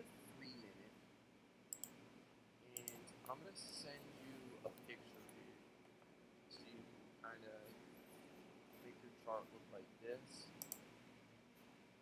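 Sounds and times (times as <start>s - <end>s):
computer clicks: 1.7s - 2.0s, 2.8s - 3.1s, 10.5s - 10.9s.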